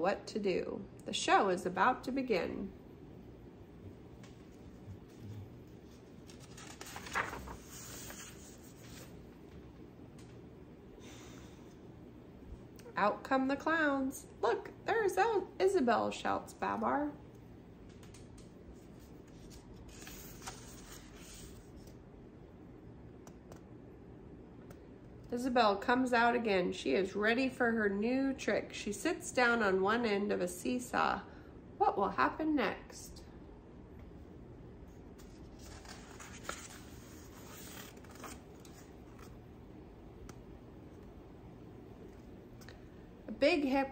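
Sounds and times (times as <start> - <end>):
page turning rustle: 5.1 - 9.2, 17.9 - 22.0, 35.2 - 39.4.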